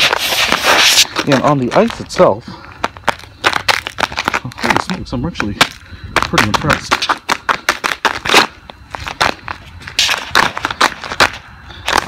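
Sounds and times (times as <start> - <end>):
footsteps crunching on ice and snow: 0.0 - 12.0.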